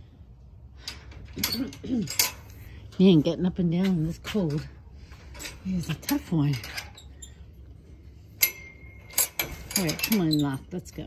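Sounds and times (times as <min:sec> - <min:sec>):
metal clink of gate lock: 0:00.9 - 0:02.5, 0:08.4 - 0:10.8.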